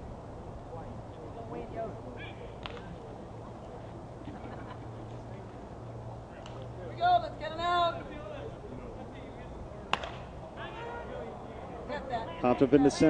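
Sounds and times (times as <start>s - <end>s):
bat hitting ball: 9.9s - 10.3s
voices shouting: 9.9s - 13.0s.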